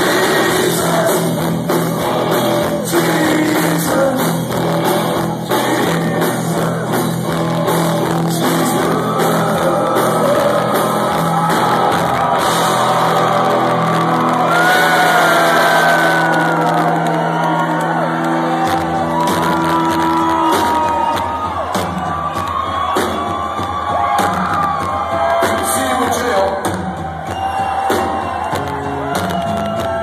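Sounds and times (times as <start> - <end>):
crowd shouting and whooping: 0.0 - 30.0
live rock band playing chords: 0.0 - 30.0.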